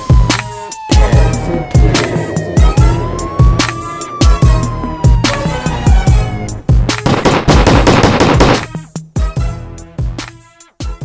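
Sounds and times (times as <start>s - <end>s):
music: 0.0s - 11.0s
machine-gun fire: 7.0s - 8.8s.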